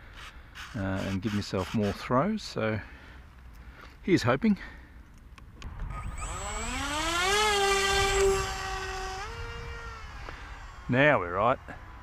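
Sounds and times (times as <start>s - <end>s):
electric propeller motor whine: 5.6s - 12.0s.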